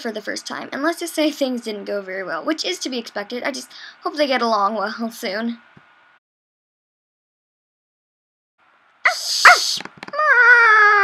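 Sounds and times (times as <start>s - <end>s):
cat hissing: 9.1s - 9.9s
dog yelps: 9.1s - 10.9s
long animal cry falling in pitch: 9.4s - 11.0s.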